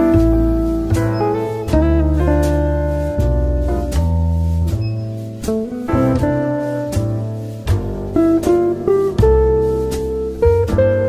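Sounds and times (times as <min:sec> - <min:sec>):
low bass notes: 0:00.0 - 0:11.0
plucked notes: 0:00.0 - 0:11.0.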